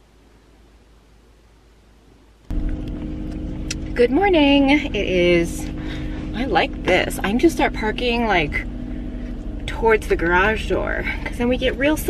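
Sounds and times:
car cabin rumble and hum: 2.3s - 12.0s.

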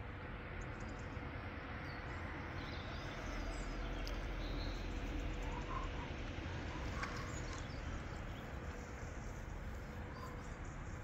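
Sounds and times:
constant faint tone: 0.0s - 11.0s
low rumble and hum: 0.0s - 11.0s
faint bird chirps: 1.9s - 8.6s.

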